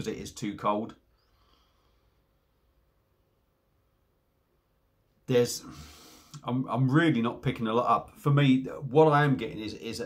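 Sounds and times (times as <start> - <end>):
faint sniff: 5.6 - 6.4.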